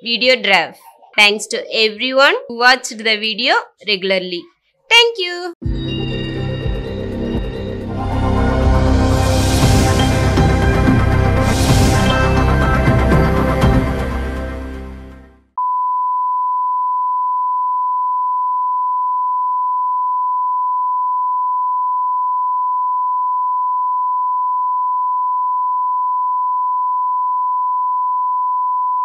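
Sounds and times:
music sting: 0:05.7 - 0:15.3.

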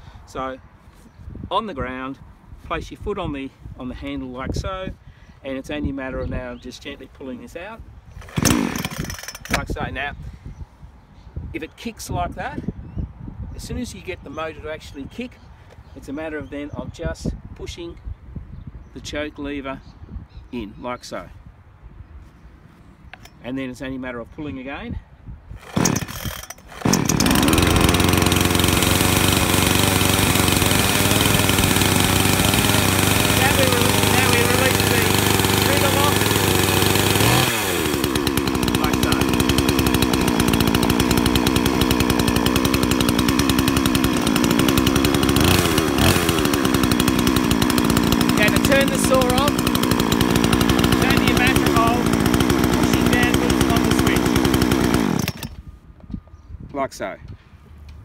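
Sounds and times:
chainsaw starter cord pull: 0:08.1 - 0:09.8, 0:25.6 - 0:55.6
chainsaw idling and revving: 0:08.2 - 0:09.8, 0:25.6 - 0:55.6.

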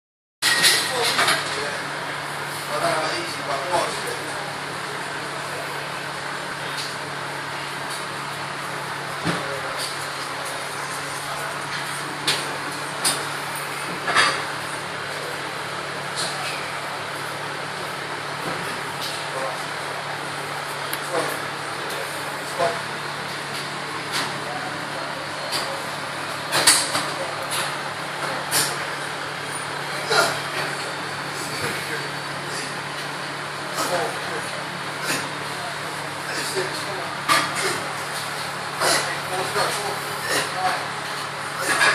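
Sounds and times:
electric fan whirring: 0:00.6 - 0:41.9.

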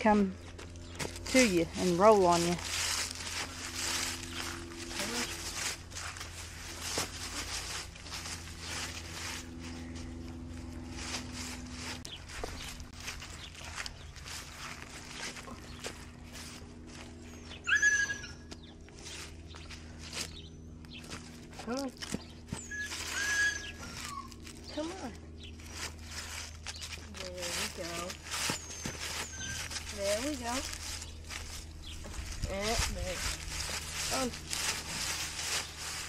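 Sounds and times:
footsteps in dry leaves: 0:00.1 - 0:36.0.

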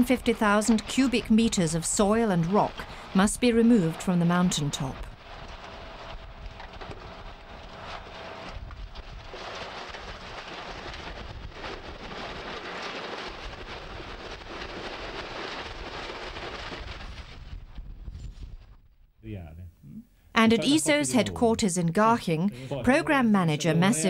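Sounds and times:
dirt and stones sliding: 0:00.0 - 0:18.6
truck engine running low: 0:05.0 - 0:12.8.

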